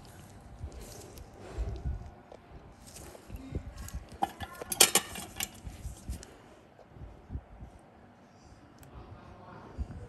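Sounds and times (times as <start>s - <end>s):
metal instruments clicking and clinking: 4.1s - 5.7s.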